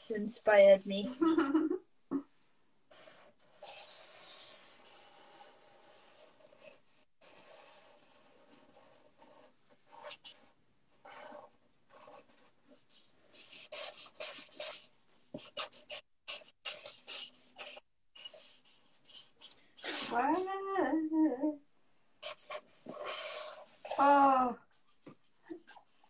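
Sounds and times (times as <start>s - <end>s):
markers scratching on paper: 2.9s - 20.4s, 22.2s - 26.0s.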